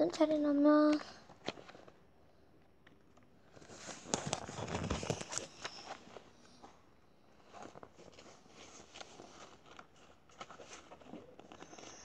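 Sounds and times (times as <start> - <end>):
book pages flipping: 0.9 - 2.0, 2.8 - 12.0
light book handling: 0.9 - 2.0, 2.7 - 12.0.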